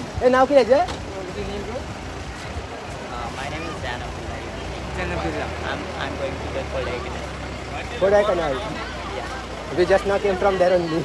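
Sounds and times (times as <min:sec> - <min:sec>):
faint voices talking: 0:00.0 - 0:11.0.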